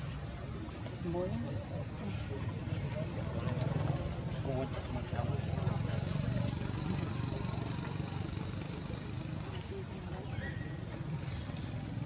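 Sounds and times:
faint distant voices: 0:00.0 - 0:12.0
low engine rumble: 0:00.0 - 0:12.0.

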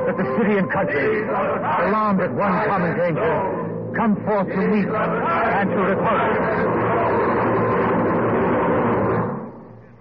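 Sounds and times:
sustained music: 0:00.0 - 0:09.8.

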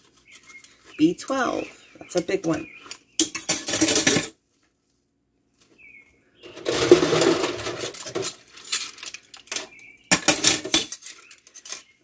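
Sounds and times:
dishes and silverware clattering: 0:03.2 - 0:04.4, 0:06.5 - 0:12.0.

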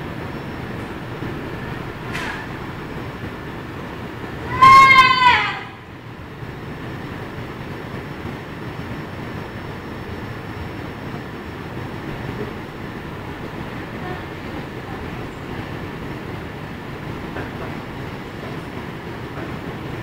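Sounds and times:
transit station background noise: 0:00.0 - 0:20.0.

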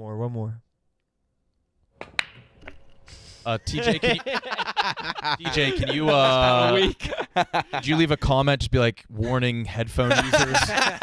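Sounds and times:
cue ball cracking into rack: 0:02.0 - 0:03.0
pool balls clacking: 0:02.0 - 0:03.1.

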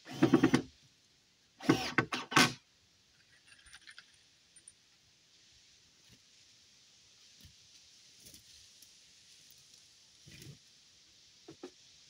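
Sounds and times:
background hiss: 0:00.0 - 0:12.0
hand tools and lumber clattering: 0:00.1 - 0:00.7.

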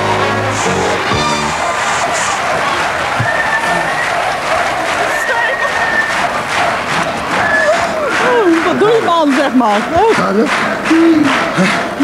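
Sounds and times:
audience applauding and cheering: 0:00.0 - 0:12.0
excited voices: 0:00.0 - 0:12.0
long high notes: 0:00.0 - 0:12.0.

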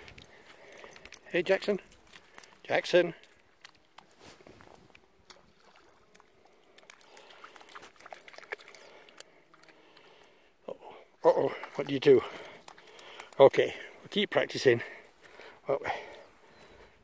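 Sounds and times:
dog wading through water: 0:00.0 - 0:09.8, 0:11.4 - 0:13.8.

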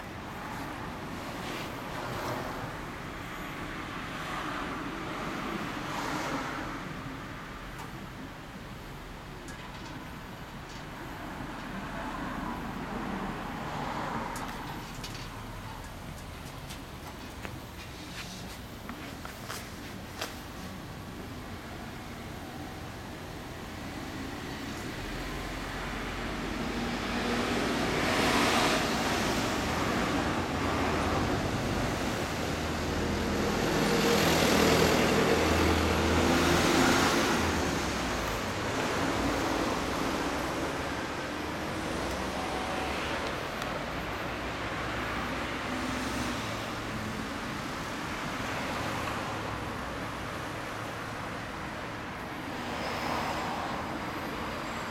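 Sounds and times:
vehicles passing on a street: 0:00.0 - 0:54.9.

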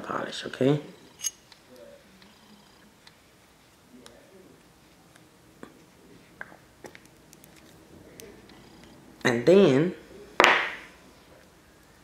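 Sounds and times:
sharp knock of hard object: 0:10.4 - 0:10.8.

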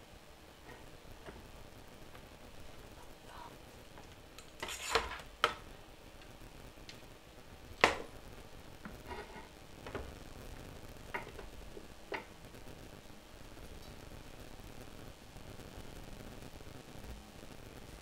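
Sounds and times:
scrape on wooden desk: 0:04.6 - 0:05.2, 0:09.0 - 0:09.6.

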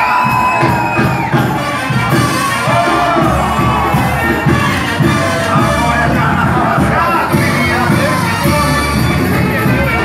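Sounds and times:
crowd cheering: 0:00.0 - 0:10.0
live band playing: 0:00.0 - 0:10.0.

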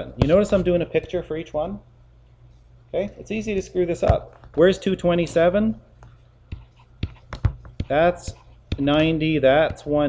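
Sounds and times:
low steady hum: 0:00.0 - 0:10.0
pen stylus tapping on tablet: 0:06.5 - 0:09.9.

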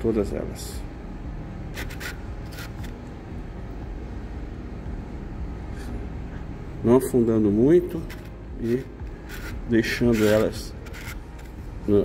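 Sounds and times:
steady low hum: 0:00.0 - 0:12.0
faint gritty scratches in sand: 0:08.1 - 0:11.4.

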